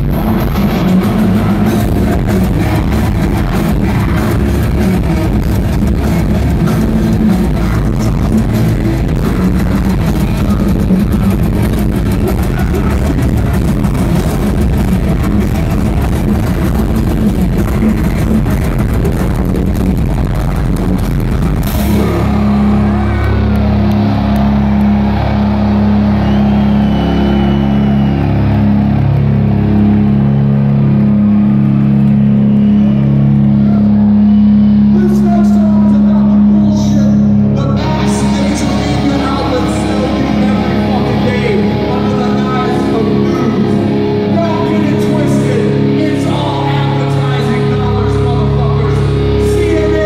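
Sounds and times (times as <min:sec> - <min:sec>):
droning low guitar notes: 0:00.0 - 0:50.0
heavy metal band playing: 0:00.0 - 0:50.0.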